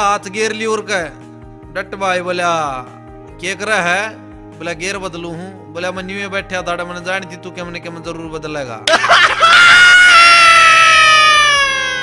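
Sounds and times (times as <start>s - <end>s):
long high-pitched cry: 9.4s - 12.0s.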